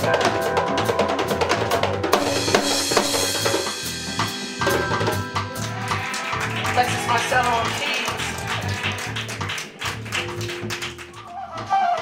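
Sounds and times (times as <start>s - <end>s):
drum hits: 0.0s - 11.2s.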